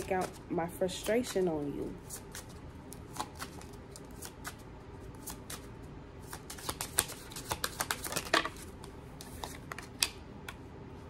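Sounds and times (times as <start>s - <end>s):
cards being shuffled: 0.0s - 10.6s.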